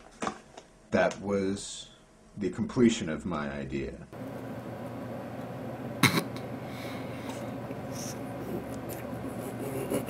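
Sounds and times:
background hiss: 0:00.0 - 0:10.0
low electrical hum: 0:00.0 - 0:10.0.

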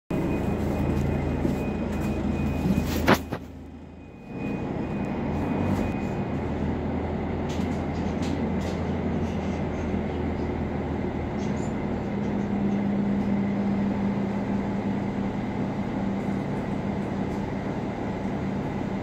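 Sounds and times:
bus engine drone: 0:00.1 - 0:19.0.

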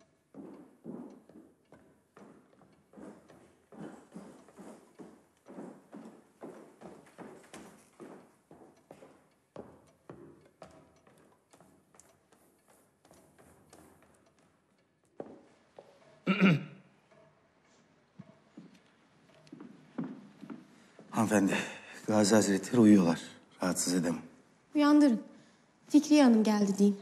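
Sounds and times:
footsteps on hard floor: 0:00.0 - 0:16.3, 0:16.9 - 0:21.4.

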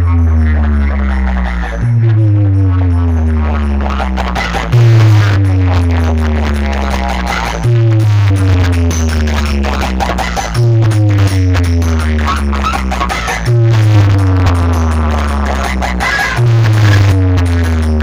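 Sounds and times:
electronic dance music: 0:00.0 - 0:18.0
heavy bass note sliding down: 0:00.0 - 0:18.0.

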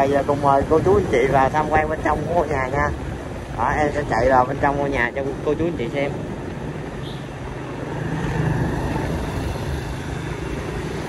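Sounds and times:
road and wind noise: 0:00.0 - 0:11.0
motorbike engine hum: 0:04.5 - 0:11.0.

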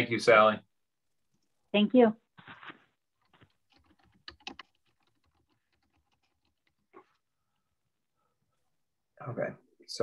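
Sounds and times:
typing on computer keyboard: 0:03.2 - 0:07.2.

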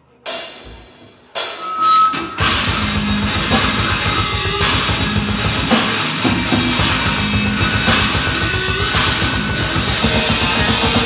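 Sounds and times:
heavy electric guitar hits: 0:00.3 - 0:11.0
fast bass drum pulses: 0:02.4 - 0:11.0.

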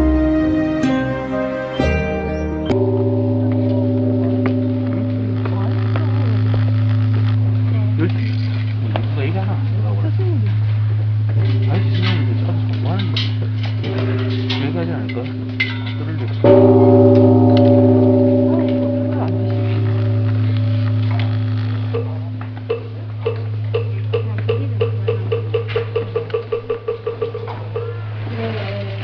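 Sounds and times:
bell ringing: 0:00.8 - 0:08.6, 0:11.4 - 0:28.1
steady low hum: 0:02.7 - 0:29.0.

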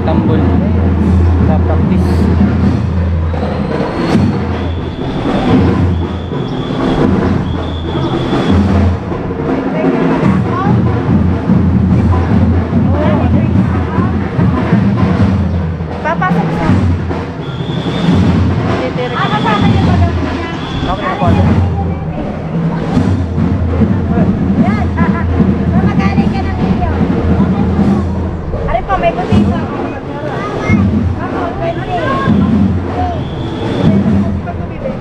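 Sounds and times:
people talking: 0:00.0 - 0:02.5, 0:09.4 - 0:17.5, 0:18.7 - 0:35.0
drums playing heavy beat: 0:00.0 - 0:35.0.

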